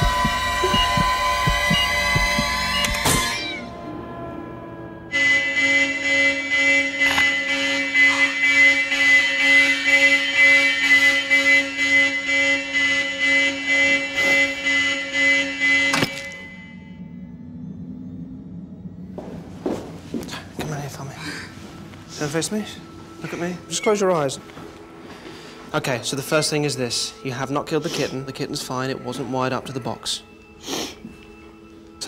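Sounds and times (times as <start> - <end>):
electronic alarm tone: 0.0 - 19.1.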